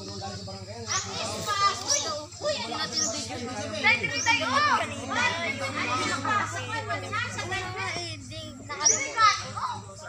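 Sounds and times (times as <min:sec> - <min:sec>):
children shouting excitedly: 0:00.9 - 0:10.0.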